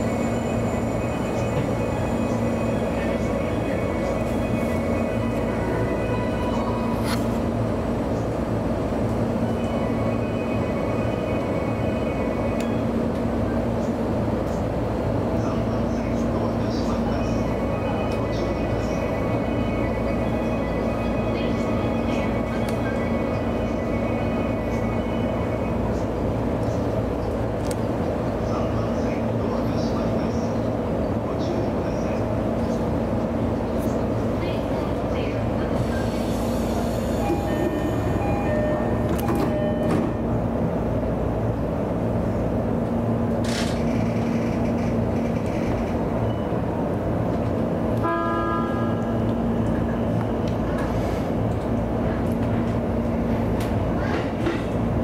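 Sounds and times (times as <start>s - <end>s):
train equipment humming: 0.0s - 55.0s.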